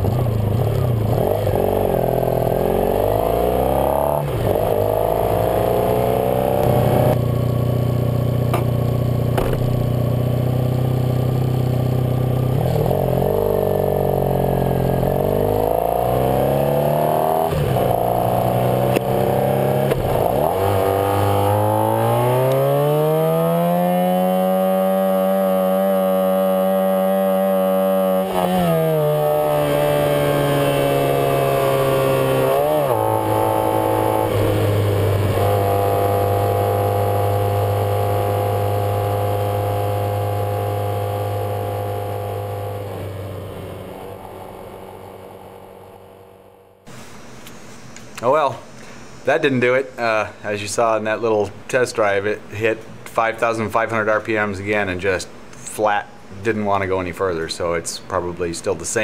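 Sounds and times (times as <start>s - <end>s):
motorcycle engine accelerating: 0.0s - 47.0s.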